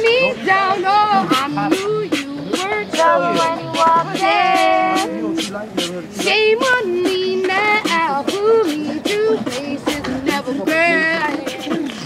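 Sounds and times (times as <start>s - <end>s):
beatboxed percussion: 0.0s - 12.0s
voices singing wordless melody: 0.0s - 12.0s.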